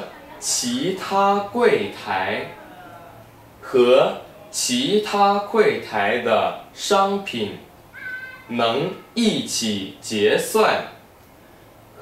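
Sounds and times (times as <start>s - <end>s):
man speaking: 0.0s - 7.7s, 8.5s - 11.0s.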